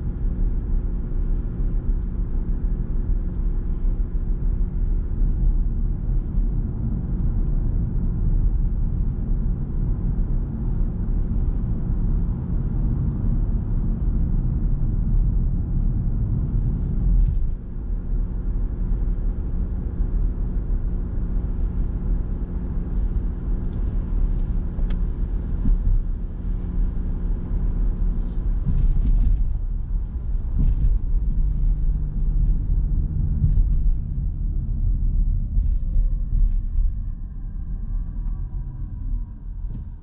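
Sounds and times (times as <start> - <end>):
car tyre and drivetrain rumble: 0.0 - 40.0
faint car hum: 0.0 - 40.0.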